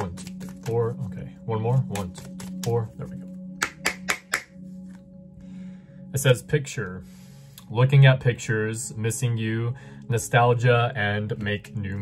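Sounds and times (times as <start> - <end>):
low ambient music drone: 0.0 - 12.0
finger snaps: 3.6 - 5.1.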